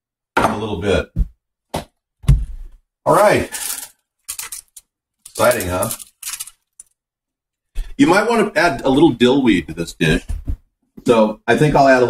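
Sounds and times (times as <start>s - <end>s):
small hard objects rattling: 3.5s - 7.0s.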